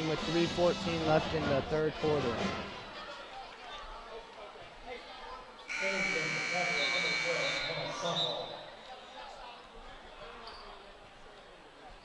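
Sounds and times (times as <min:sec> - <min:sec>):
crowd chatter: 0:00.0 - 0:12.0
scoreboard horn buzz: 0:05.7 - 0:08.2.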